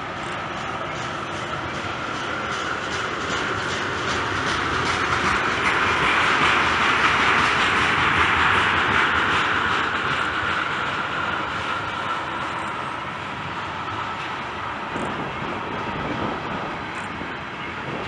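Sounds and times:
train wheels rushing on rails: 0:00.0 - 0:18.0.

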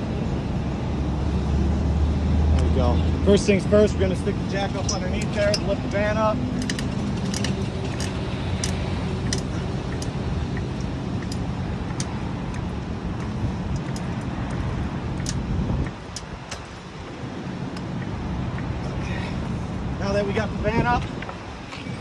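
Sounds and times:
low vehicle engine hum: 0:00.0 - 0:22.0.

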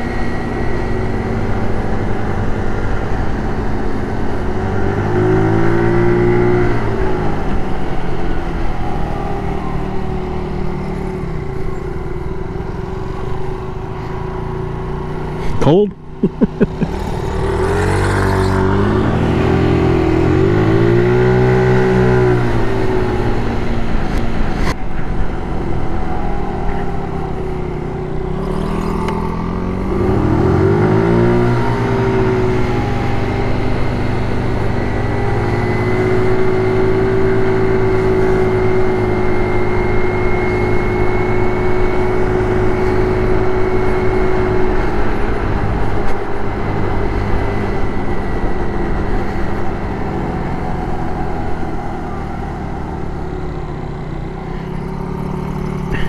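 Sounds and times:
scooter engine accelerating: 0:00.0 - 0:56.0.

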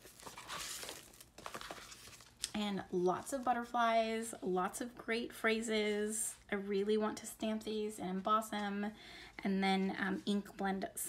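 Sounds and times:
plastic sleeve crinkling: 0:00.0 - 0:03.5.

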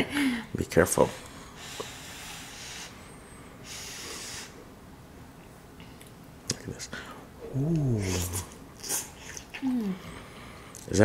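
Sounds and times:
person blowing on food: 0:01.6 - 0:03.0, 0:03.6 - 0:04.6.

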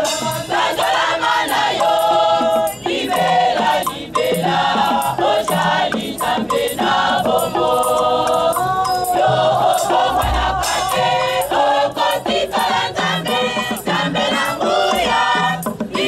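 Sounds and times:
choir singing in harmony: 0:00.0 - 0:16.0.

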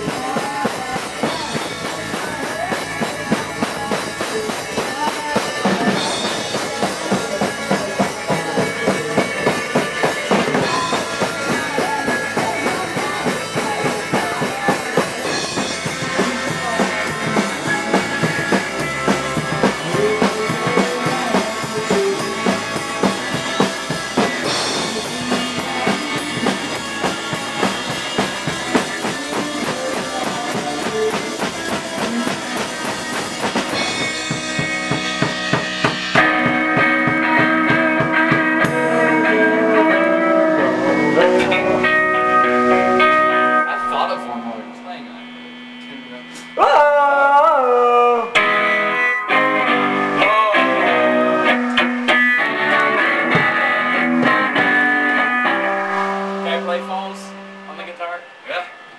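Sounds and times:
drum kit: 0:00.0 - 0:58.9
electric guitars: 0:00.0 - 0:58.9.

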